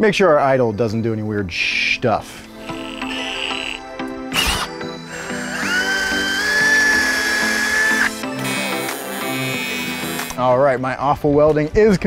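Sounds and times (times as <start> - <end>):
background music: 0.0 - 12.0
electric drill whining: 2.6 - 10.4.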